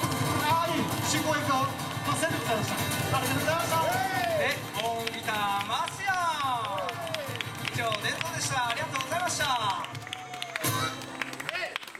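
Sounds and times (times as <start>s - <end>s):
faint acoustic band music: 0.0s - 11.8s
man speaking over pa: 0.4s - 9.9s.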